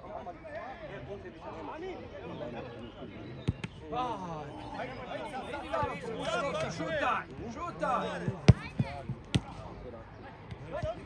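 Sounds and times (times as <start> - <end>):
football being kicked: 8.3 - 9.6.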